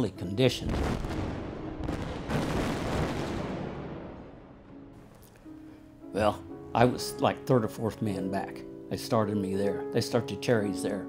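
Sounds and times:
explosion blast: 0:00.7 - 0:04.7.

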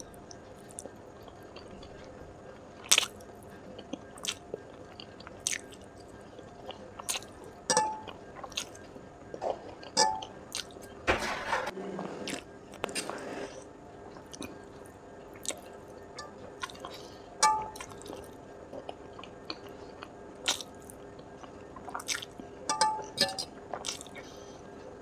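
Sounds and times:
wet chewing and lip smacks: 0:03.8 - 0:05.9, 0:08.4 - 0:09.9, 0:10.5 - 0:10.8, 0:15.4 - 0:15.7, 0:17.8 - 0:22.4, 0:23.7 - 0:24.2.

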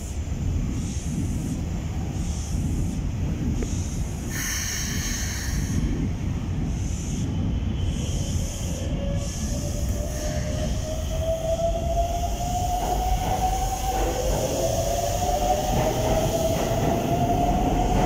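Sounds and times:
train low rumble: 0:00.0 - 0:18.0.

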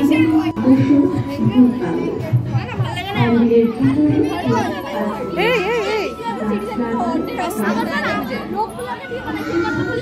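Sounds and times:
children's voices: 0:00.0 - 0:10.0
crowd chatter: 0:00.0 - 0:10.0
thin steady high tone: 0:03.3 - 0:10.0.

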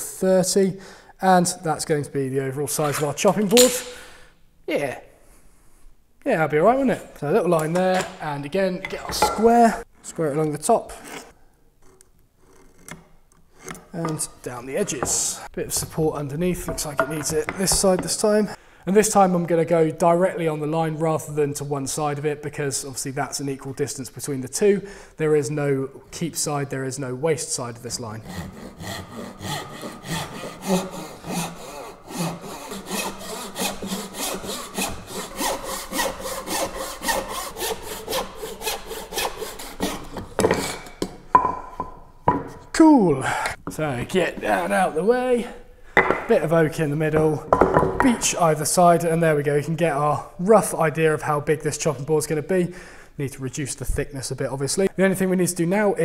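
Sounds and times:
hand saw cutting wood: 0:27.9 - 0:41.1
pencil scratching on wood: 0:28.2 - 0:40.4.

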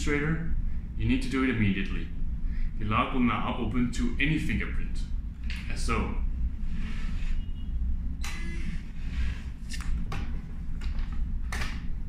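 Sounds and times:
low room hum: 0:00.0 - 0:12.0
faint electronic tone: 0:07.0 - 0:08.9.

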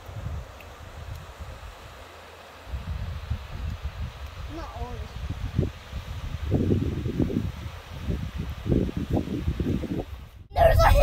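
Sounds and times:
wind buffeting microphone: 0:02.7 - 0:11.0.

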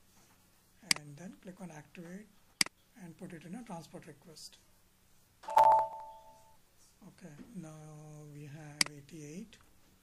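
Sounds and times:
computer notification chime: 0:05.5 - 0:06.5.

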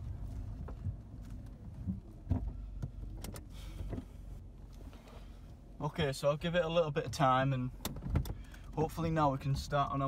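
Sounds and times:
car engine low hum: 0:00.0 - 0:10.0.

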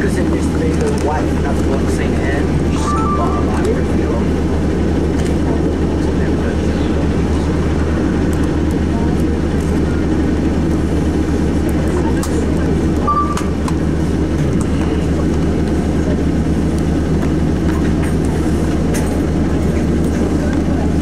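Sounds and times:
bus engine idling: 0:00.0 - 0:21.0.

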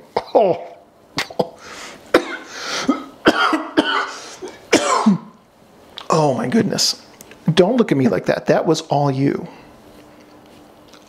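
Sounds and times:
man coughing and spluttering: 0:00.0 - 0:05.4.

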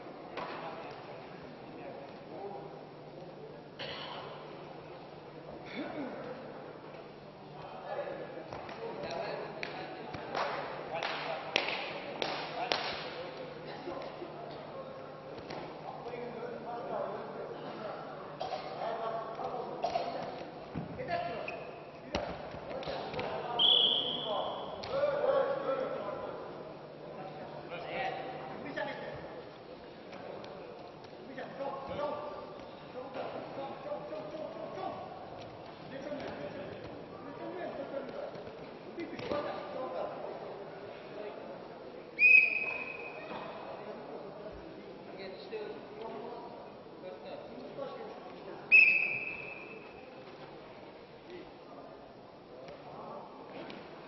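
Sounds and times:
referee's whistle: 0:23.6 - 0:24.6, 0:42.2 - 0:43.3, 0:48.7 - 0:49.9.

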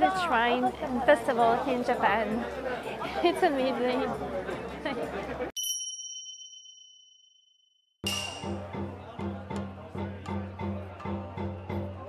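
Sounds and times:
festival crowd: 0:00.0 - 0:05.5, 0:08.0 - 0:12.0
bright bell-like ding: 0:05.6 - 0:07.3.

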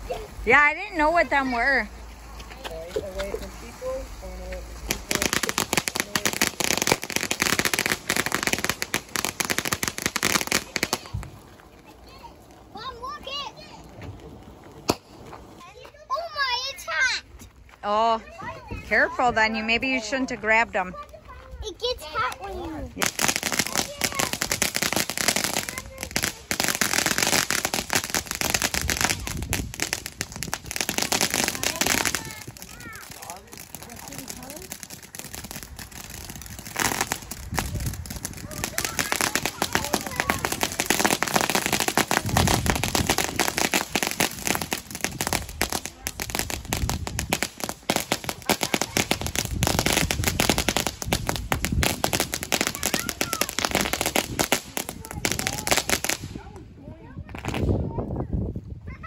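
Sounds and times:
fireworks crackling and popping: 0:00.0 - 0:58.0.

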